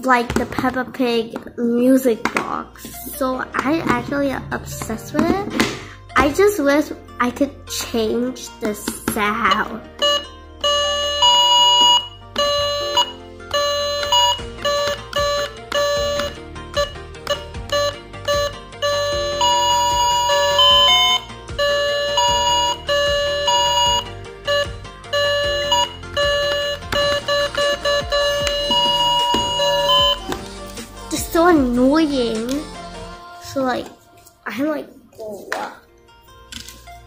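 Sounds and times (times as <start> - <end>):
electronic toy music box tune: 9.4 - 30.4.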